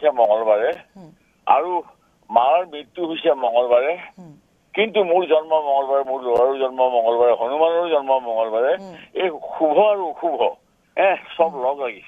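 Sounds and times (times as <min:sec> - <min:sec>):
man speaking over telephone: 0:00.0 - 0:00.8, 0:01.5 - 0:04.1, 0:04.8 - 0:12.0.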